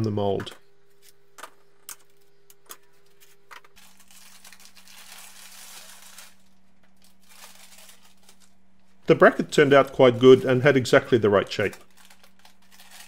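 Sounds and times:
paper crinkling and tearing: 3.0s - 13.0s.

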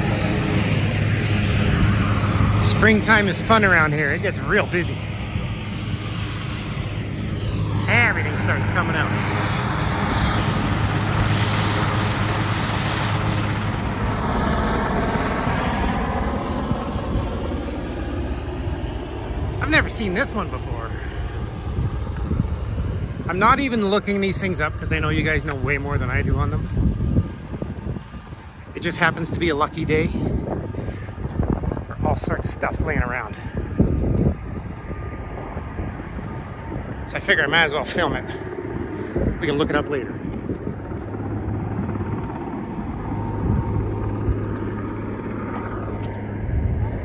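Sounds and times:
aircraft engine droning: 0.0s - 47.0s
wind buffeting microphone: 0.0s - 47.0s.

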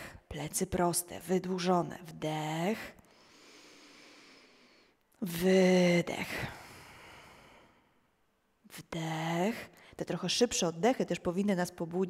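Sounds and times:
slow breath in: 3.1s - 5.0s.

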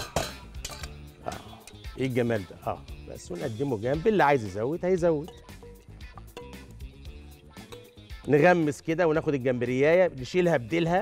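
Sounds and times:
spoon clinking metal bowl: 0.0s - 1.9s, 5.2s - 6.8s, 7.6s - 8.3s
background music: 0.0s - 11.0s.

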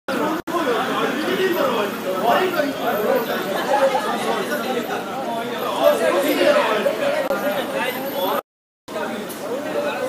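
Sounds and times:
people talking at once: 0.1s - 10.0s.

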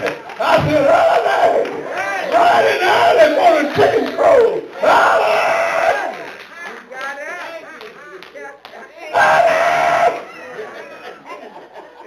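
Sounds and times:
scattered voices calling out: 0.4s - 6.4s, 9.1s - 10.7s
hand claps: 6.0s - 8.9s.

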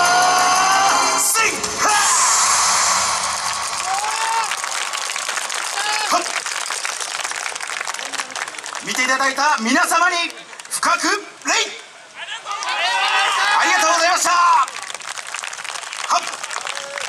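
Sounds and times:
cheers and shouts: 0.0s - 6.5s, 12.2s - 15.0s, 15.8s - 17.0s
audience applauding: 2.8s - 11.5s, 12.5s - 17.0s.

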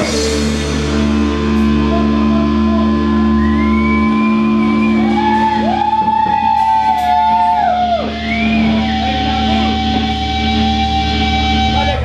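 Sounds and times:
bending gliding melody line: 0.0s - 12.0s
rock band sustained chord: 0.0s - 12.0s.

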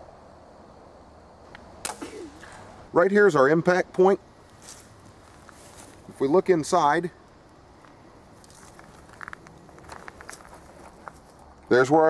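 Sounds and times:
faint clicks and rustles: 7.8s - 11.7s.

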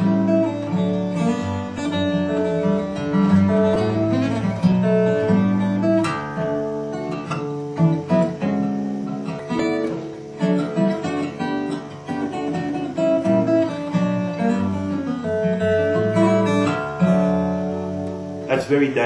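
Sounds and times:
acoustic guitar plucked: 0.0s - 19.0s.

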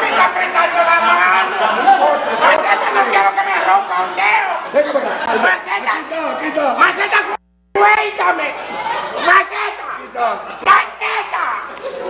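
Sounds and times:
several voices talking: 0.0s - 12.0s.

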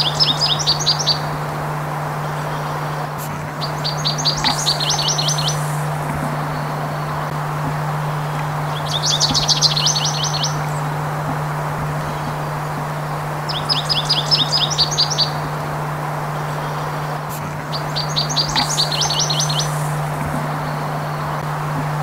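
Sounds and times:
finch song: 0.0s - 22.0s
steady low hum: 0.0s - 22.0s.

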